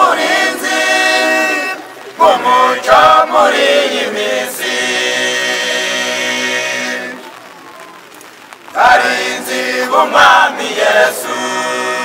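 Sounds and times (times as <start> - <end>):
choir singing unaccompanied: 0.0 - 7.4, 8.7 - 12.0.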